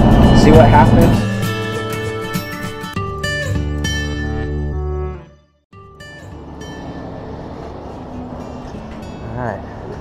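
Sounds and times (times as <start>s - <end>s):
wind: 0.0s - 2.7s, 5.8s - 10.0s
traffic: 0.0s - 3.0s, 5.8s - 10.0s.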